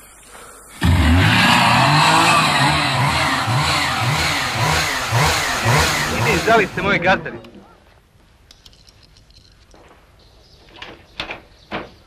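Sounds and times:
chainsaw engines revving: 0.7 - 7.4.

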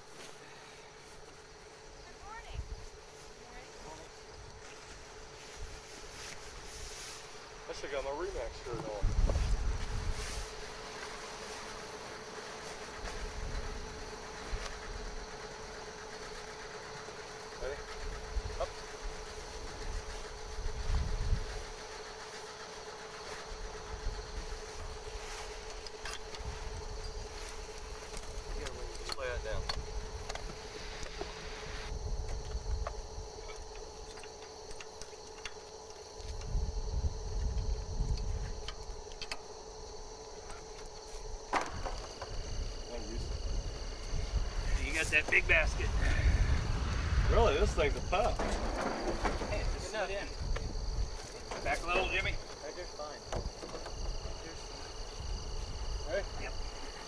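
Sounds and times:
steady hum: 0.0 - 57.0
wind gusts on microphone: 42.5 - 51.2.

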